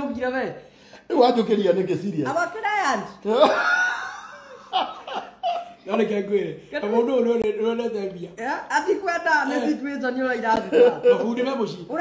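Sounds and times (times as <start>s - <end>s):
men laughing heartily: 3.3s - 5.9s.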